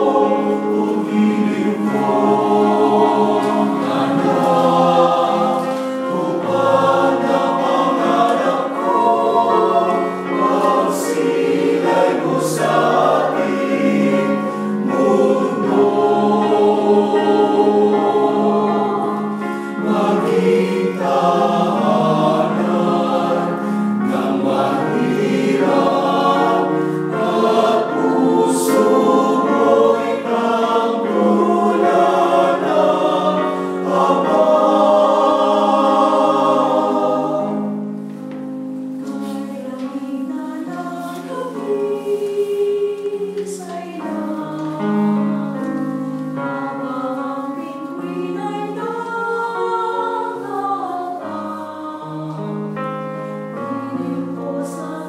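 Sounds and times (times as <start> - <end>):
mixed choir singing: 0.0 - 38.2, 39.0 - 55.0.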